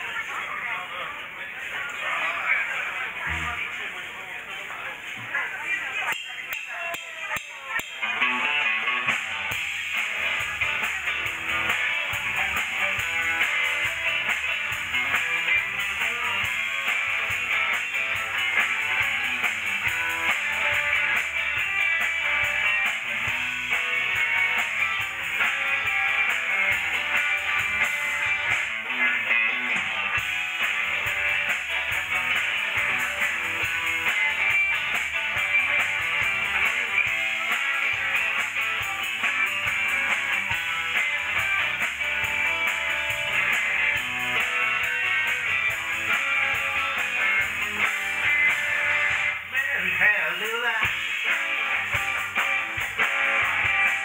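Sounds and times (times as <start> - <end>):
rock band playing: 6.4 - 54.0.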